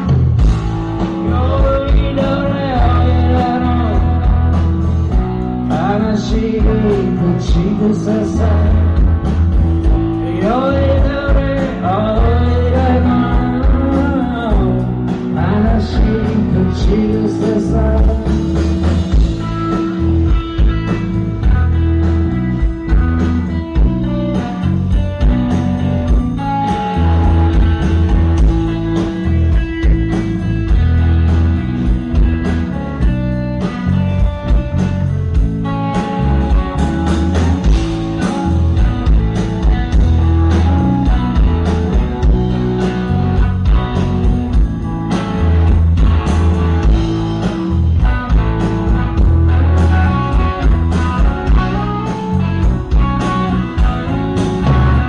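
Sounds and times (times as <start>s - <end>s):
bass guitar: 0.0s - 55.0s
electric guitar: 0.0s - 55.0s
steady drum beat: 0.0s - 55.0s.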